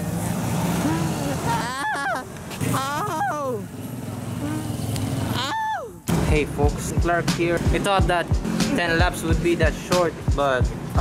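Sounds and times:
cars and motorcycles passing: 0.0 - 11.0
street traffic: 0.0 - 11.0
person calling out: 4.4 - 4.8.

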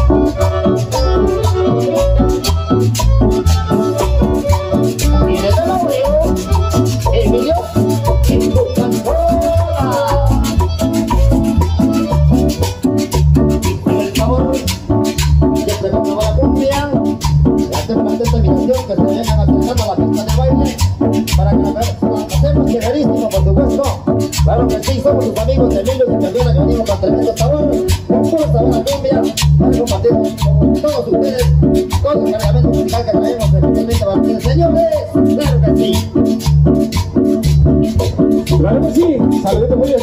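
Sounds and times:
melody line: 0.0 - 40.0
rattle keeping time: 0.0 - 40.0
steady bass beat: 0.0 - 40.0.

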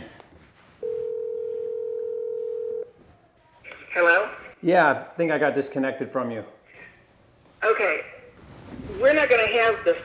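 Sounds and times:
telephone ringback tone: 0.8 - 2.9.

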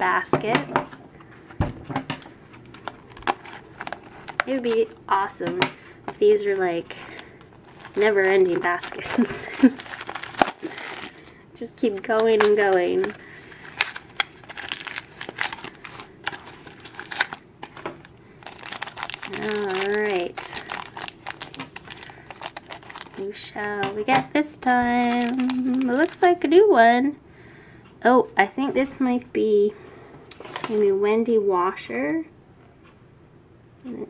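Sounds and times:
plastic wrapper crinkling: 2.2 - 5.1, 6.0 - 26.5
packaging tearing: 2.7 - 5.0, 6.1 - 11.3, 12.0 - 23.3, 24.6 - 26.3.

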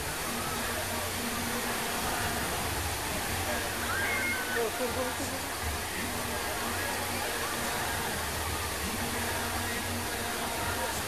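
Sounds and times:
fountain water jets splashing: 0.0 - 11.0.

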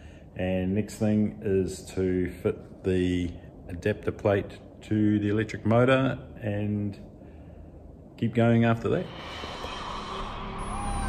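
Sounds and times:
low rumble: 7.8 - 11.0
rising swell of noise: 8.9 - 11.0
electronic background music: 9.1 - 11.0
high tone gliding down: 9.1 - 11.0.

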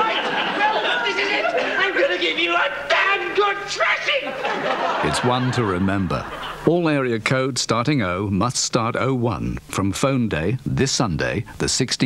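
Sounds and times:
voices chattering: 0.0 - 8.3.

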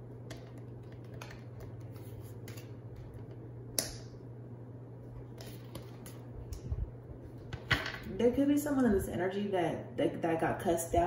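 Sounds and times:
steady low hum: 0.0 - 11.0
cards clicking and tapping: 0.2 - 4.1.

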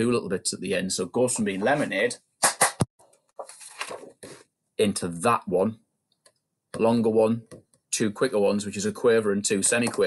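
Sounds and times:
hand claps: 2.4 - 2.9
paper rustling: 3.4 - 4.4.

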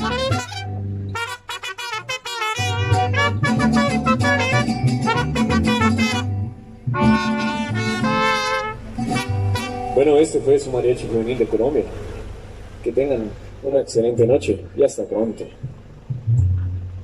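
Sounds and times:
trumpets playing in harmony: 0.0 - 10.1
bass guitar: 0.0 - 12.2, 14.0 - 17.0.

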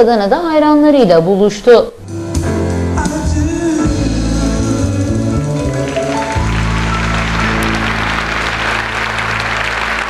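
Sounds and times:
deep held bass notes: 2.0 - 10.0
live band music: 2.0 - 10.0.

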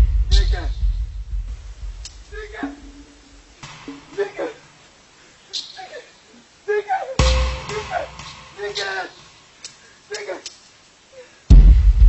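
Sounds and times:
high cries sliding down: 5.5 - 10.4.

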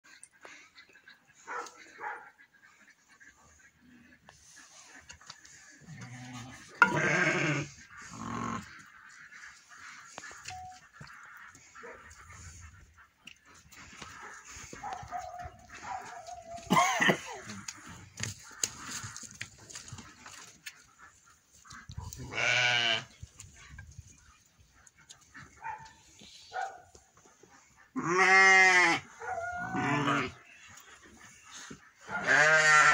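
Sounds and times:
sheep bleating: 6.0 - 8.6, 22.3 - 23.1, 28.0 - 29.0, 29.6 - 30.4, 32.2 - 32.9
knocks of animals jostling: 13.5 - 22.2.

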